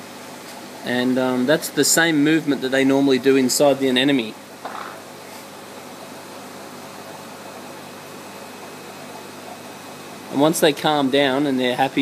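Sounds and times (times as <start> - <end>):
faint hum: 0.0 - 12.0.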